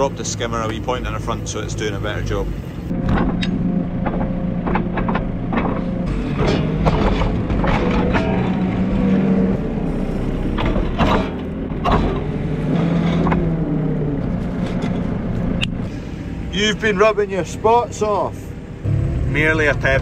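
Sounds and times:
diesel engine running: 0:00.0 - 0:20.0
metallic knocks and clanks: 0:02.9 - 0:13.6.

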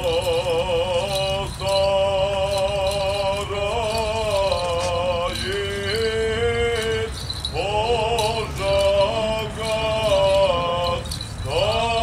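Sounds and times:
men chanting a hymn: 0:00.0 - 0:12.0.

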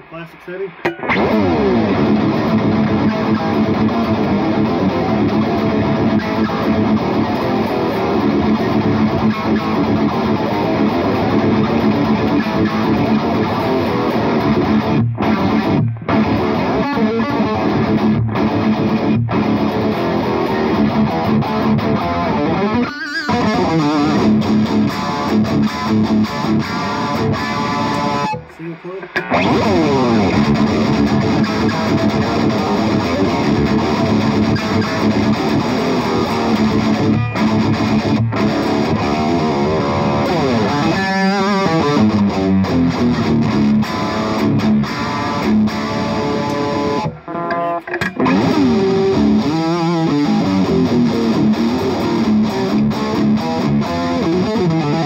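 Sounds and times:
high-gain electric guitar riffing: 0:00.0 - 0:55.0.

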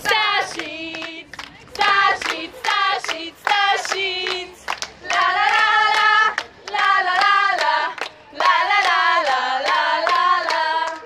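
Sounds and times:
group singing in high voices: 0:00.0 - 0:11.0
hand claps: 0:00.0 - 0:11.0.

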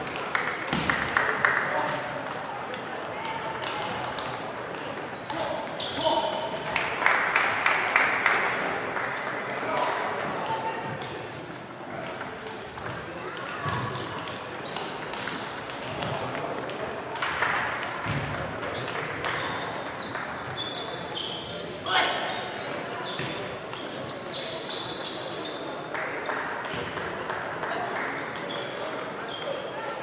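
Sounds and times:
hubbub of voices: 0:00.0 - 0:30.0
table tennis balls clicking: 0:02.2 - 0:05.8, 0:11.0 - 0:21.1.

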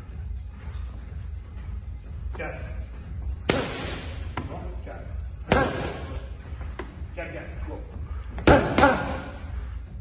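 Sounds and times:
boxing gloves hitting mitts: 0:03.4 - 0:04.7, 0:05.4 - 0:07.0, 0:08.3 - 0:09.4.

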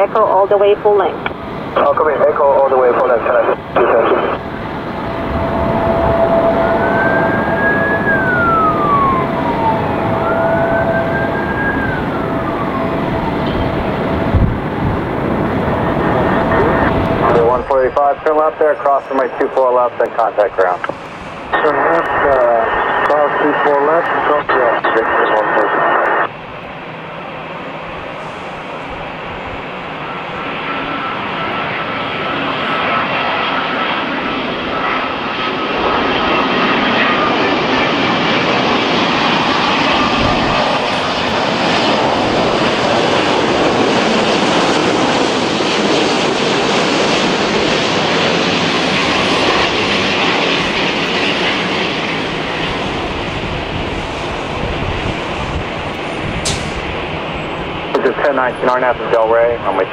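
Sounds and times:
high jet whine: 0:00.0 - 0:59.9
jet engine rumble: 0:00.0 - 0:59.9.

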